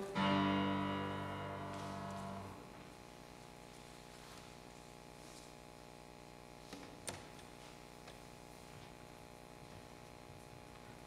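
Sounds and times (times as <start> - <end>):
piano chord ringing: 0.0 - 2.8.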